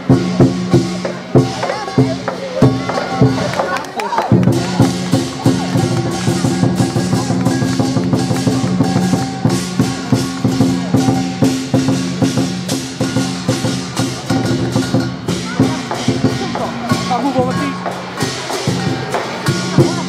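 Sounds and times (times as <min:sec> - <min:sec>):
lion dance percussion beat: 0:00.0 - 0:20.0.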